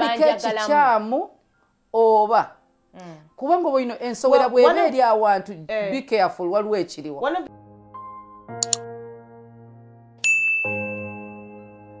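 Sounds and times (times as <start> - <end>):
notification bell ding: 10.2 - 11.2.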